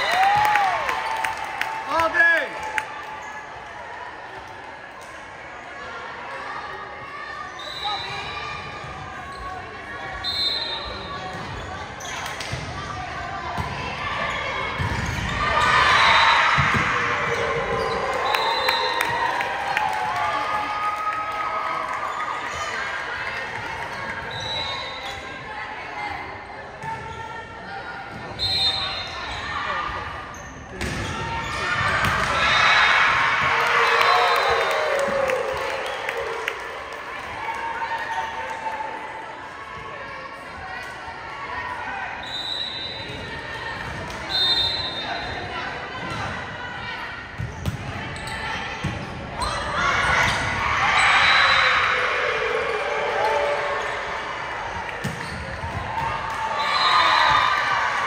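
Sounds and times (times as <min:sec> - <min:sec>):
crowd shouting and cheering: 0:00.0 - 0:58.0
referee whistle blasts: 0:10.2 - 0:11.0, 0:28.4 - 0:29.2, 0:42.2 - 0:43.1, 0:44.2 - 0:45.4
volleyball hits: 0:30.7 - 0:34.0.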